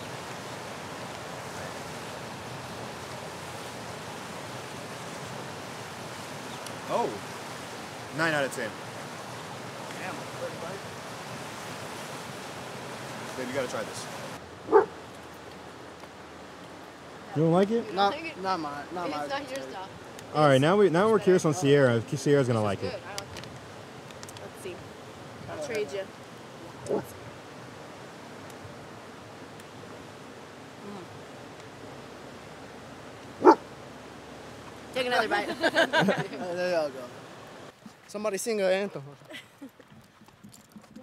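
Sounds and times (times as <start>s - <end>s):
river rushing: 0.0s - 39.0s
steady background hiss: 0.0s - 39.2s
dog bark: 14.7s - 14.9s, 33.4s - 33.6s.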